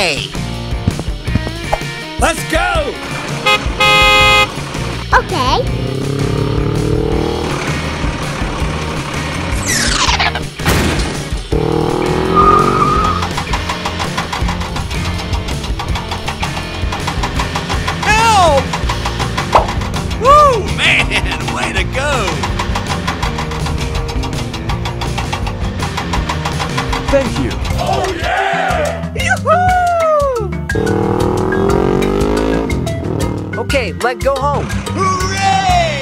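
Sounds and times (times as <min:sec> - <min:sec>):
background music: 0:00.0 - 0:36.0
vehicle engine effect: 0:02.9 - 0:10.6, 0:11.2 - 0:27.8, 0:30.7 - 0:33.7
loud horn blast: 0:03.4 - 0:04.6.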